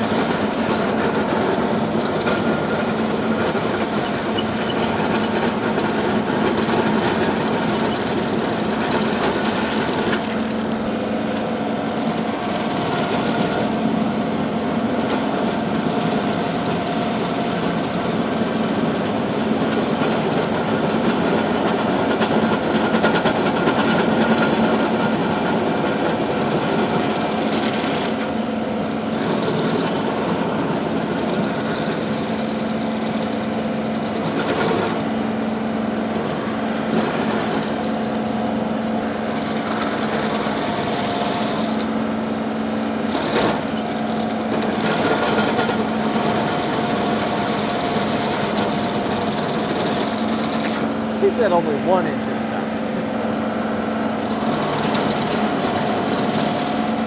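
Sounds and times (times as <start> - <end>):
diesel tractor engine: 0.0 - 57.0
stump grinder grinding wood: 0.0 - 57.0.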